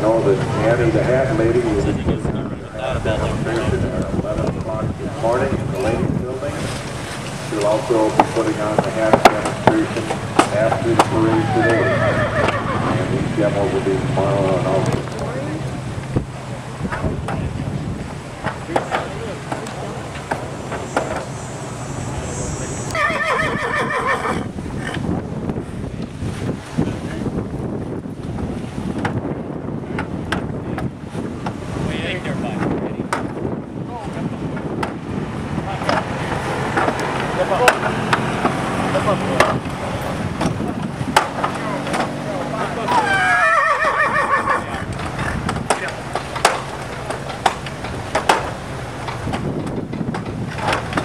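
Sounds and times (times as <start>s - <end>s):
horse whinnying: 11.2s - 13.1s, 22.9s - 24.5s, 42.9s - 45.4s.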